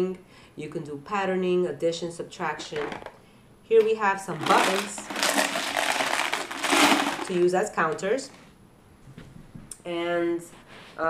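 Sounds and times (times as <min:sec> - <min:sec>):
buttons rattling in a jar: 0:04.4 - 0:07.5.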